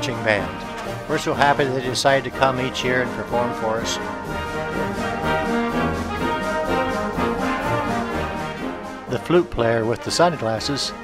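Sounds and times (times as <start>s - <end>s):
marching band playing: 0.0s - 11.0s.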